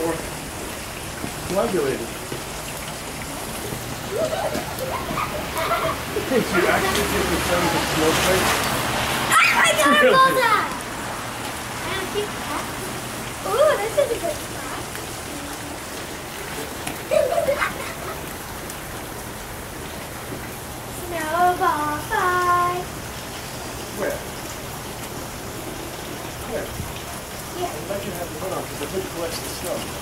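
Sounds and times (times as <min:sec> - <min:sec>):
wet snow pattering and dripping: 0:00.0 - 0:30.0
people calling out: 0:03.4 - 0:07.4, 0:09.2 - 0:10.8.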